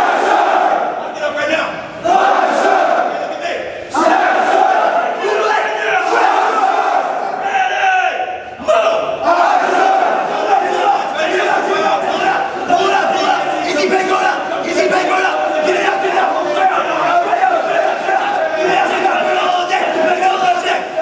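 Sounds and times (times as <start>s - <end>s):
instructors shouting: 0.0s - 21.0s
men yelling together: 3.9s - 21.0s.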